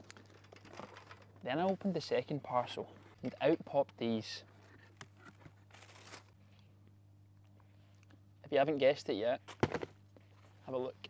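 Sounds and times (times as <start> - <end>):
low steady hum: 0.0 - 11.0
tissue paper crinkling: 5.6 - 6.4.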